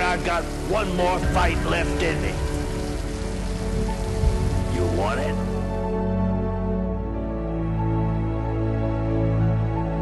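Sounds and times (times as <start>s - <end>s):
rain falling on street: 0.0s - 6.0s
background music held notes: 0.0s - 10.0s.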